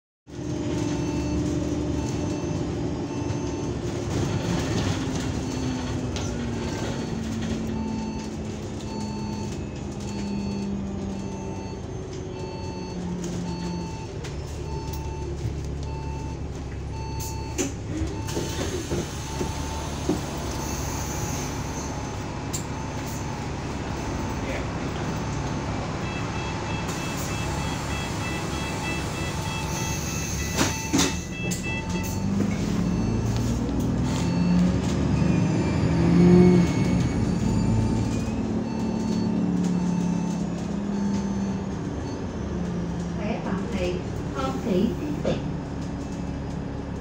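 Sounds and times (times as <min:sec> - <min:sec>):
bus drivetrain slowing: 0:00.3 - 0:47.0
short beeps: 0:26.0 - 0:34.6
doors opening with clunks: 0:26.6 - 0:42.0.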